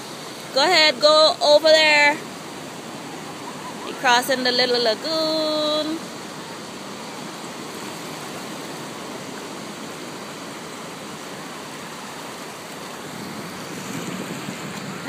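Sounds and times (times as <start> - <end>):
ocean surf breaking: 0.0 - 15.0.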